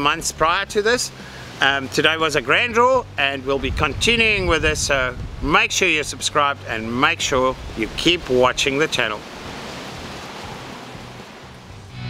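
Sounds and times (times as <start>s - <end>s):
music: 0.0s - 12.0s
outdoor background hiss: 0.0s - 12.0s.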